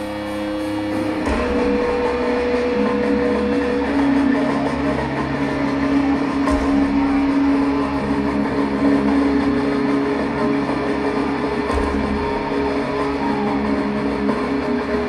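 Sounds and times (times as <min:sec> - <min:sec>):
distorted electric guitar: 0:00.0 - 0:15.0.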